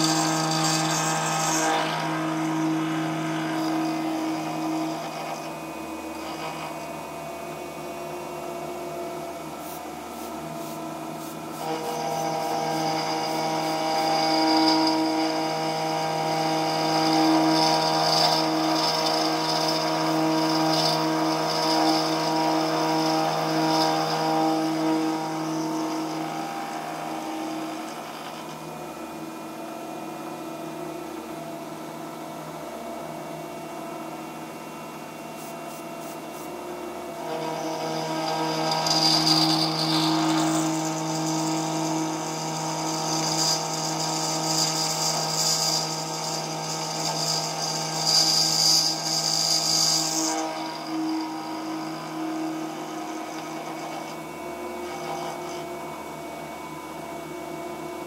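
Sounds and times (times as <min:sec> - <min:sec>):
milling spindle hum: 0:00.0 - 0:58.0.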